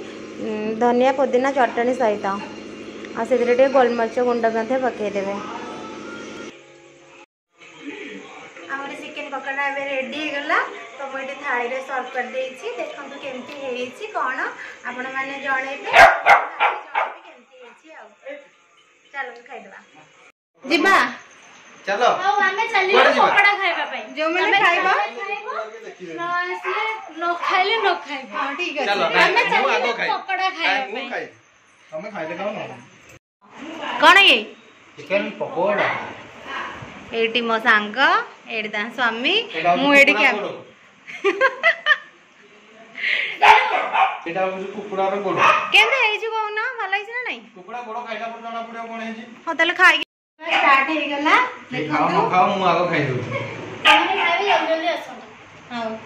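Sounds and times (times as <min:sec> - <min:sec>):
dog barking: 0:15.9 - 0:17.3, 0:22.9 - 0:23.9, 0:26.6 - 0:28.0, 0:43.4 - 0:44.3, 0:45.4 - 0:46.0, 0:53.8 - 0:54.8.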